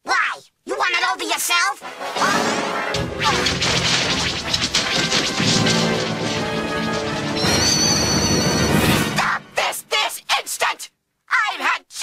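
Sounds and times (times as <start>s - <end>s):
background music: 1.8s - 9.9s
cartoon smashing and crashing: 2.0s - 9.3s.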